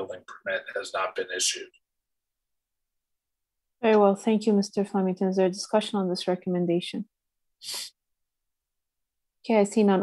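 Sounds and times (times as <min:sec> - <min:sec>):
person breathy puff: 0:07.6 - 0:08.0.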